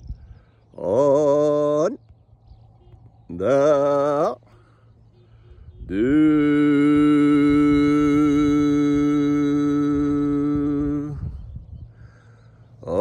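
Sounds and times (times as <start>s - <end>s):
man chanting a long note: 5.8s - 11.2s.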